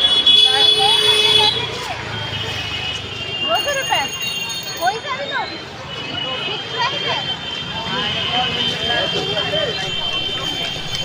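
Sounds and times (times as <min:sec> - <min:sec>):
many people talking: 0:00.0 - 0:11.0.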